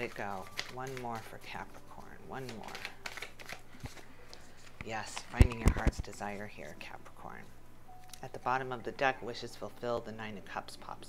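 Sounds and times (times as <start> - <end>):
cards being shuffled: 0.0 - 6.5.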